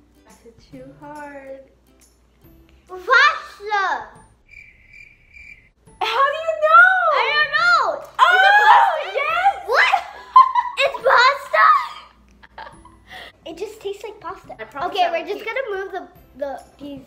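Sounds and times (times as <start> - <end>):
girl squealing and laughing: 8.2 - 10.8.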